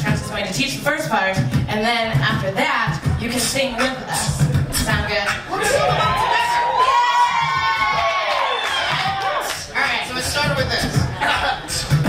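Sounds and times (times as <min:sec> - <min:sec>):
audience cheering and whooping: 0:05.5 - 0:10.0.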